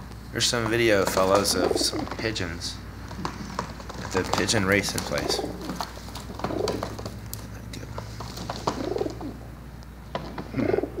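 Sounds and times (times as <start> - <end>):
pigeons cooing: 1.0 - 2.2, 3.3 - 7.2, 8.2 - 9.6, 10.2 - 11.0.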